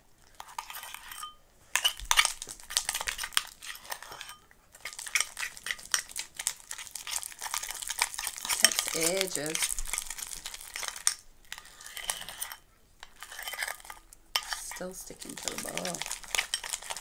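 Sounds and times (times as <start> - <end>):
metal spoon scraping metal bowl: 0.3 - 2.4, 3.0 - 6.0, 7.1 - 10.1, 10.7 - 17.0.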